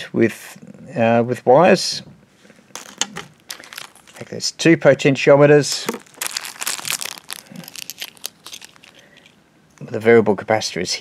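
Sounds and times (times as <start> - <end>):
plastic bags crinkling: 2.7 - 4.5, 5.6 - 9.4.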